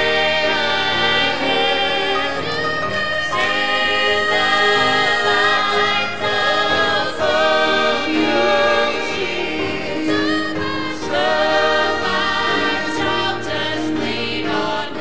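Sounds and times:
choir singing gospel song: 0.0s - 15.0s.

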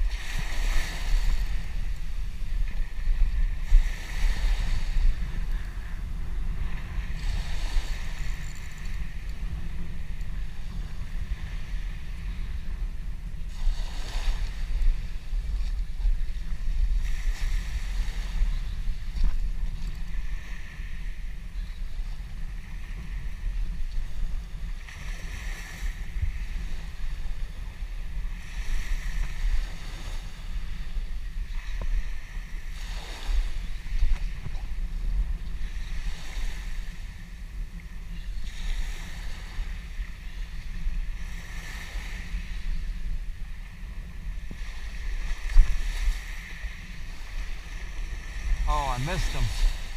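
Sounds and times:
small waves washing on beach: 0.0s - 49.9s
wind buffeting microphone: 0.0s - 49.9s.

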